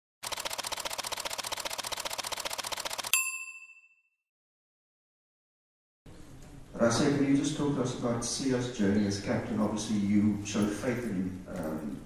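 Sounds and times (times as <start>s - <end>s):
bright ding: 3.2s - 4.2s.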